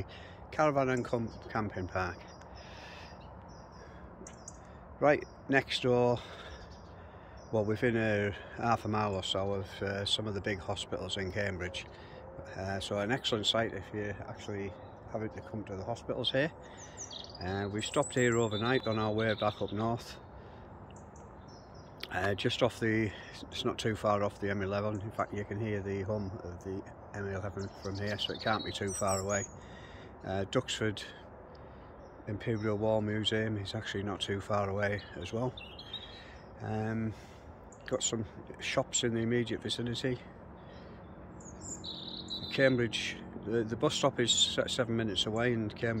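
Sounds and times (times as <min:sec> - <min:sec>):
distant motorway traffic hum: 0:00.0 - 0:46.0
faint high bird chirps: 0:16.6 - 0:20.2, 0:27.5 - 0:29.6, 0:40.6 - 0:42.8.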